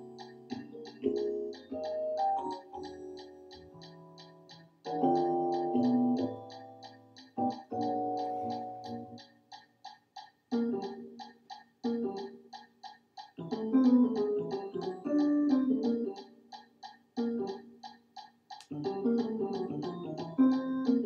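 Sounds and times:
sampled jazz chords and lines: 0:00.0 - 0:09.3, 0:13.4 - 0:16.2, 0:18.8 - 0:21.0
steady high ticking: 0:00.0 - 0:21.0.

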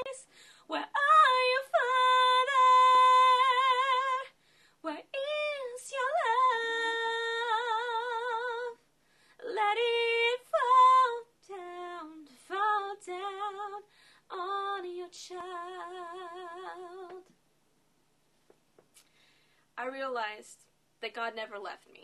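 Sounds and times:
woman singing a cappella: 0:00.0 - 0:17.3
singer breathing: 0:00.2 - 0:00.7, 0:04.4 - 0:04.8, 0:08.9 - 0:09.4, 0:13.9 - 0:14.3, 0:19.0 - 0:19.7.

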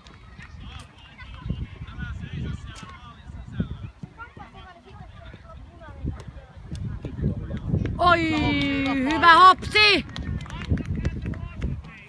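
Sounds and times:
distant children's voices: 0:00.0 - 0:06.5.

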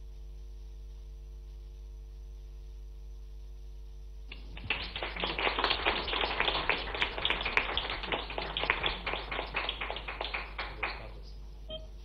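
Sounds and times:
people applauding: 0:04.3 - 0:11.3.

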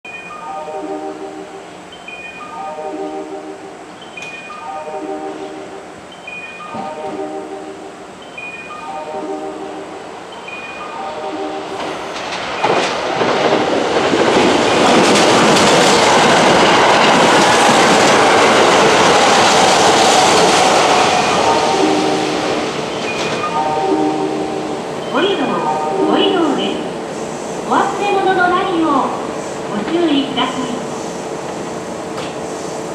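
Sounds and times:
electronic warning chime: 0:00.1 - 0:12.0, 0:21.1 - 0:27.0
train rushing through station: 0:00.1 - 0:32.9.

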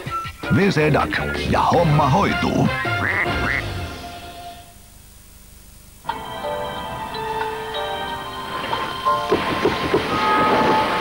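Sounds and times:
cartoon duck quacks: 0:02.8 - 0:03.7
jingle music: 0:06.1 - 0:11.0.

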